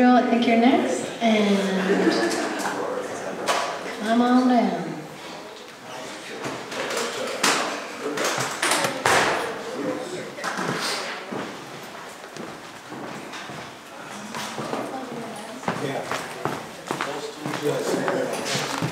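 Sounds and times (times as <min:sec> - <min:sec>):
people talking quietly: 0:00.0 - 0:18.9.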